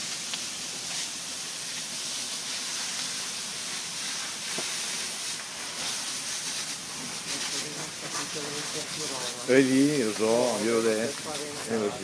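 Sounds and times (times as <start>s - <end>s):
garden hose spraying water: 0.0s - 12.0s.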